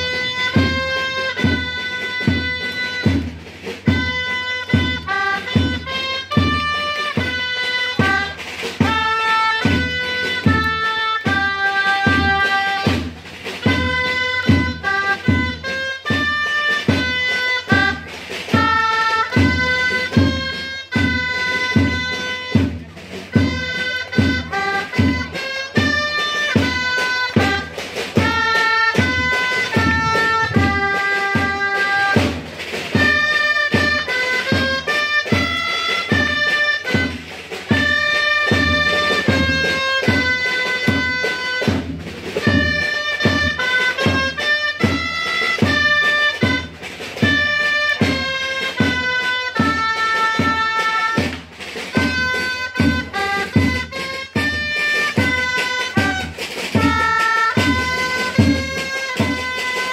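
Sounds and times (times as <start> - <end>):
reedy wind instruments playing: 0.0 - 59.9
steady drum beat: 0.0 - 59.9.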